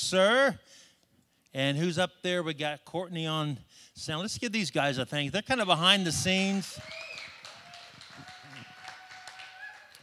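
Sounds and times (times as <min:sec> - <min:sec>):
scattered hand clapping: 0:06.5 - 0:10.0.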